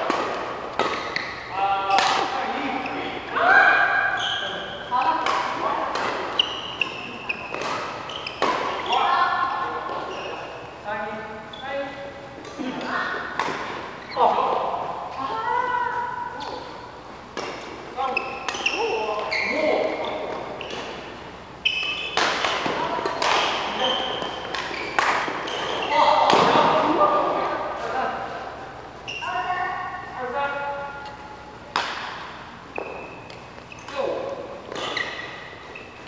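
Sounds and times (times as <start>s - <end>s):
racket striking shuttlecock: 0.0s - 2.5s, 5.2s - 9.0s, 12.4s - 14.0s, 21.8s - 26.8s, 31.7s - 34.0s
players' voices: 0.0s - 35.6s.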